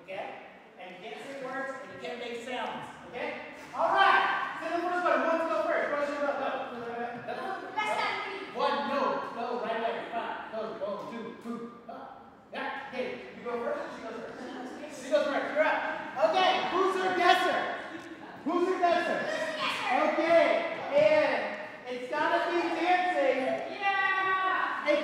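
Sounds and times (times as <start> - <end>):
people talking: 0.0 - 25.0.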